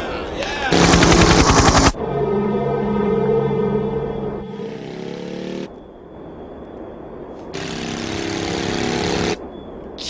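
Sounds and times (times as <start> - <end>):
machine-gun fire: 0.7 - 2.0
sustained music chords: 0.8 - 5.9.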